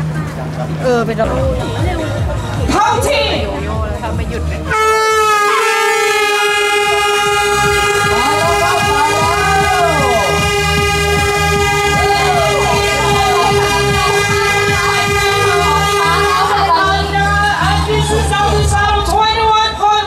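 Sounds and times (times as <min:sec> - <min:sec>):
voices calling out: 0:00.0 - 0:20.0
air horn long blast: 0:04.7 - 0:17.3.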